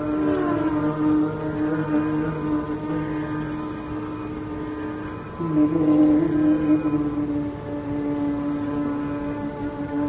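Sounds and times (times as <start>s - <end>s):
low sustained drone: 0.0s - 10.0s
man singing long note: 0.0s - 10.0s.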